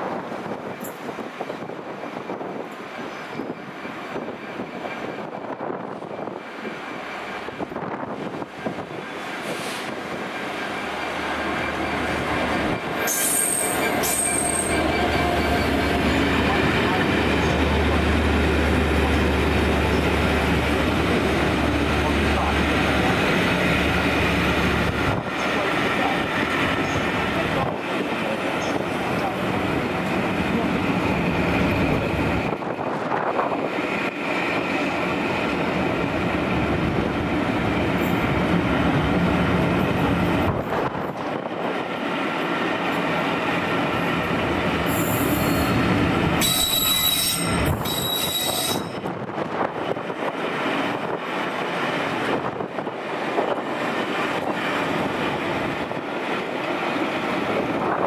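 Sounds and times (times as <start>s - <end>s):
train wheels rushing on rail: 0.0s - 58.0s
high squealing tones: 46.4s - 49.0s.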